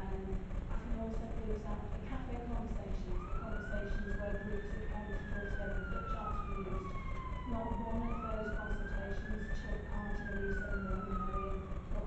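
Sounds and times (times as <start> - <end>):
emergency siren wailing: 3.1 - 12.0.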